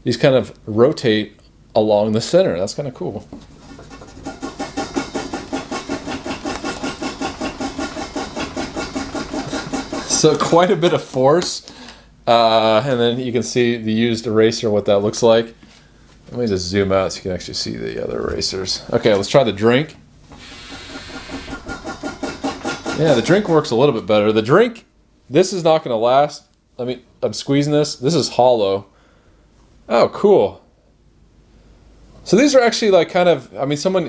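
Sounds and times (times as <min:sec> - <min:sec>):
eraser scrubbing on paper: 0:03.6 - 0:10.3, 0:20.4 - 0:23.7.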